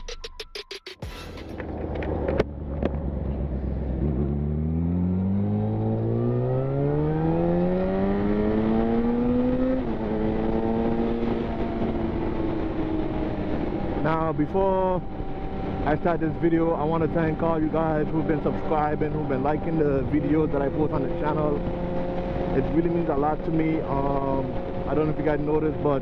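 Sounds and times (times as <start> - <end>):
motorcycle engine accelerating: 1.5 - 26.0.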